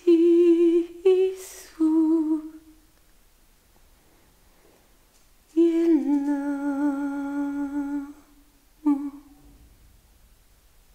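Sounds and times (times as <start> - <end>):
person humming: 5.5 - 9.5.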